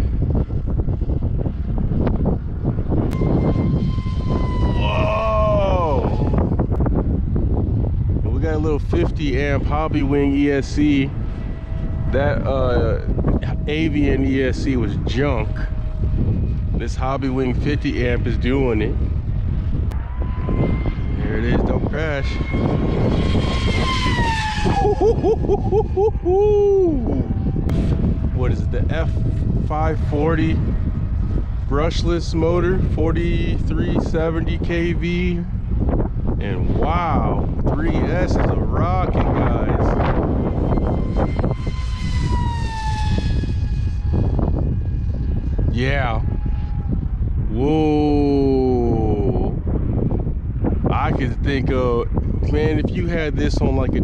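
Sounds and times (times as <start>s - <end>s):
electric motor and propeller whine: 0.0s - 54.0s
wind rumble on microphone: 0.0s - 54.0s
electric motor whining: 2.0s - 7.9s, 19.0s - 26.2s, 39.3s - 47.4s
long held tone: 3.0s - 6.8s, 23.5s - 28.4s, 40.5s - 45.6s.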